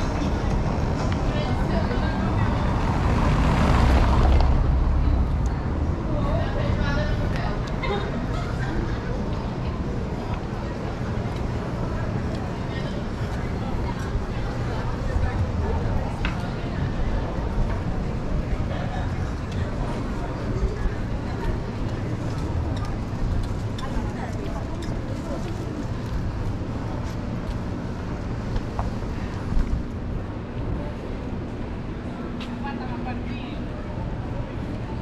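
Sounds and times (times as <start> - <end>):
indistinct voices of passers-by: 0.0 - 35.0
traffic rumble: 0.0 - 35.0.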